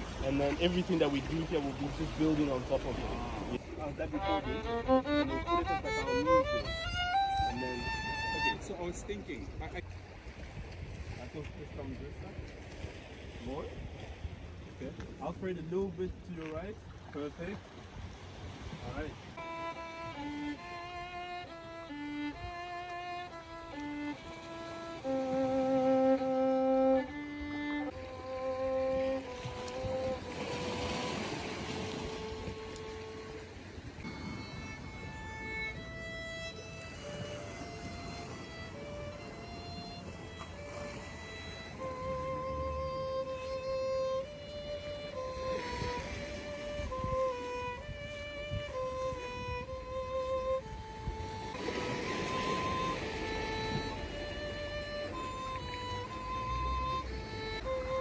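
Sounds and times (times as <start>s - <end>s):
solo violin melody: 0.0s - 58.0s.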